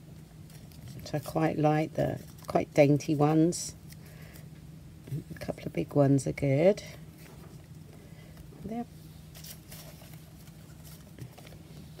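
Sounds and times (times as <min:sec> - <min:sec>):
steady low hum: 0:00.0 - 0:12.0
paper rustling: 0:09.3 - 0:12.0.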